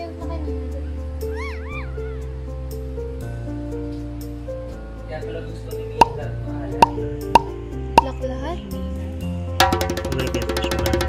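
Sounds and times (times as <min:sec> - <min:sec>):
light tune of held notes: 0:05.2 - 0:09.0
short percussive hits: 0:06.8 - 0:07.6, 0:09.6 - 0:11.0.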